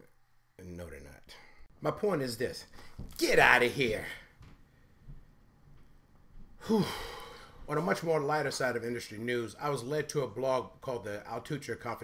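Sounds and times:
man sighing breathily: 0:06.6 - 0:07.7.

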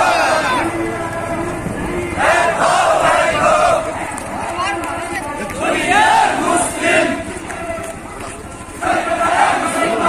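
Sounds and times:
loud shout: 0:00.0 - 0:01.5
crowd shouting slogans: 0:00.0 - 0:10.0.

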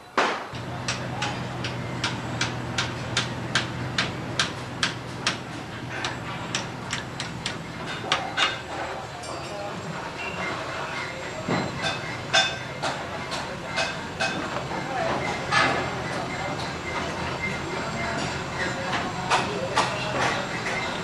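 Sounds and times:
steady low hum: 0:00.5 - 0:09.0.

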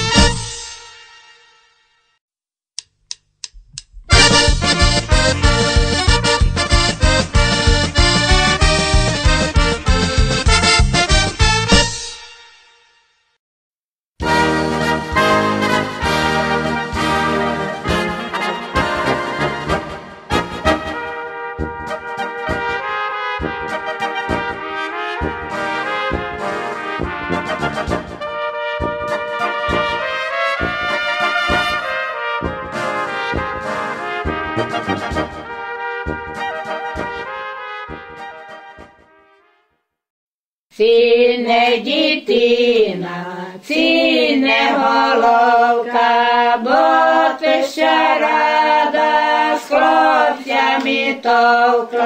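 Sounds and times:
folk brass band music: 0:00.0 - 0:01.8, 0:04.1 - 0:12.7, 0:14.2 - 0:39.8.

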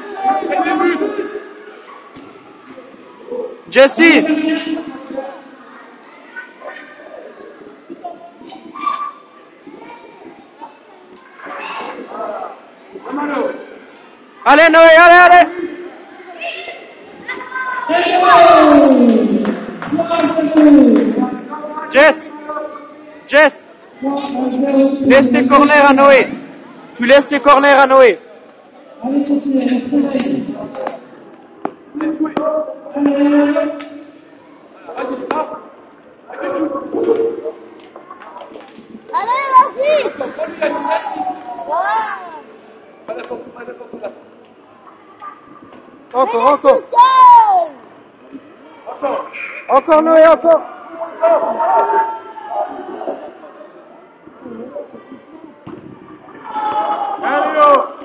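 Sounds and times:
sports hall noise: 0:00.0 - 0:58.0.

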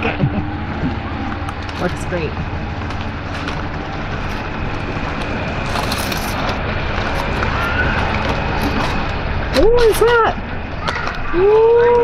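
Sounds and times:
steady low rumble: 0:00.0 - 0:12.0
aluminium foil crinkling: 0:05.2 - 0:09.2.

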